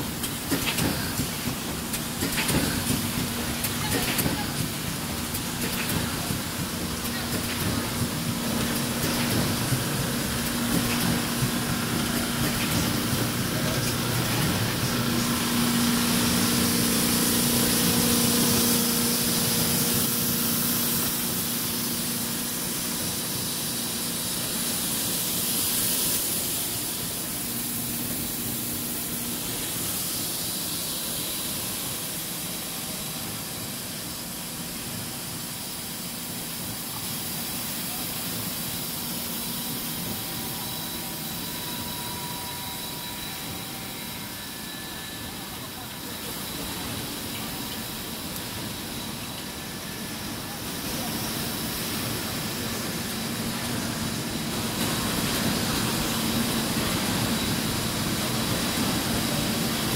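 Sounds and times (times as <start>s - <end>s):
machinery hiss and hum: 0.0s - 59.9s.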